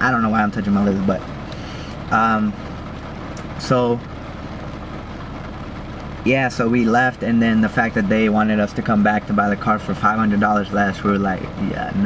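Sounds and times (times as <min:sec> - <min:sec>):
car cabin rumble and hiss: 0:00.0 - 0:12.0.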